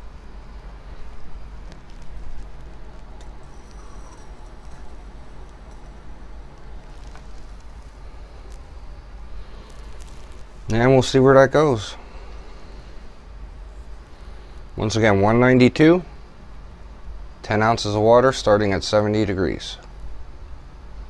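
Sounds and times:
stove flame hissing: 0.0 - 21.0.

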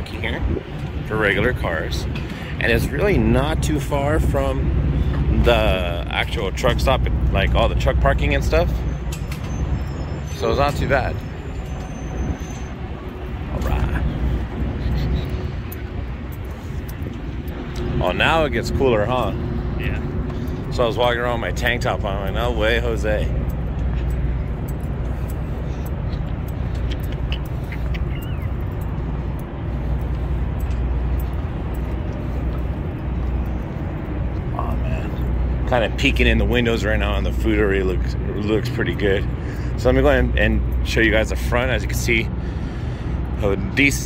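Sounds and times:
wind buffeting microphone: 0.0 - 6.1
footsteps on concrete: 23.3 - 34.6.

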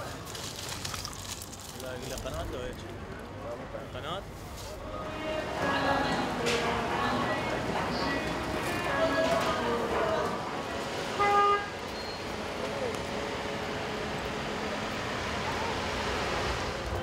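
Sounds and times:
street traffic noise: 0.0 - 17.0
voices: 1.8 - 13.4.

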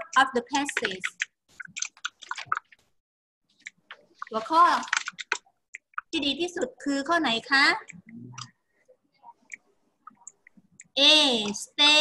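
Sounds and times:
computer mouse clicks: 0.5 - 2.8, 3.6 - 6.2, 7.8 - 8.6, 9.4 - 11.7.

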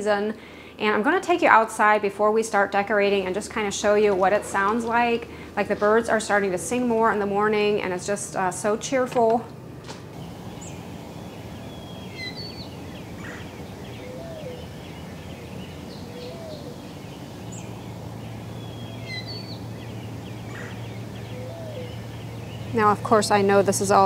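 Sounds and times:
low background rumble: 9.7 - 24.0
short low bird calls: 10.2 - 22.8
songbird warbling: 10.2 - 24.0.

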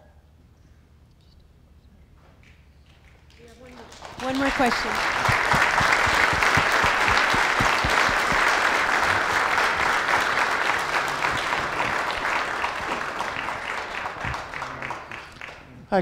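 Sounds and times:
audience applauding: 2.9 - 16.0.

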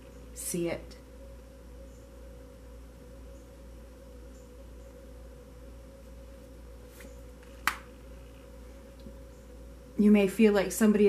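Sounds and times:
steady low hum: 0.0 - 11.0
card snapped down click: 7.6 - 7.9.

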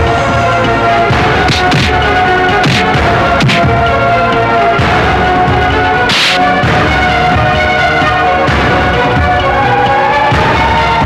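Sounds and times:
dramatic film score: 0.0 - 11.0
sharp swish sound effect: 1.5 - 2.0, 2.6 - 3.7, 6.1 - 6.5.

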